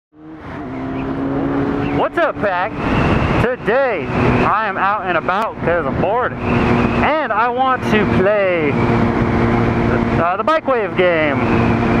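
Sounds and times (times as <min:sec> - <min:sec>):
wind and road noise: 0:00.1 - 0:12.0
motorcycle engine running: 0:00.2 - 0:12.0.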